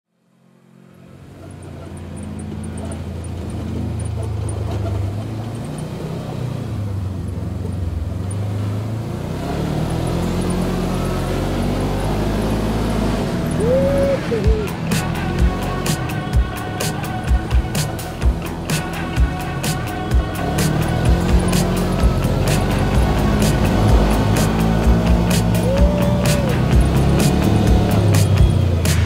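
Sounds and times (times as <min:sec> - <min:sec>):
utility vehicle engine approaching: 0:00.1 - 0:29.0.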